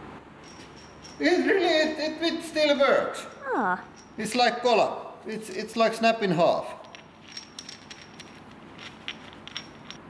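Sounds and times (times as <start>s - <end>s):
metal nut and bolt clicking: 0.4s - 1.3s, 6.8s - 10.0s.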